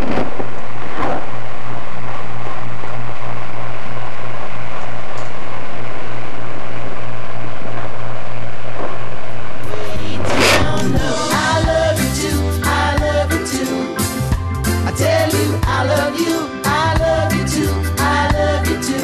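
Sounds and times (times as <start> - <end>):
low hum: 0.0 - 12.0
doppler loudspeaker rushing noise: 9.6 - 11.6.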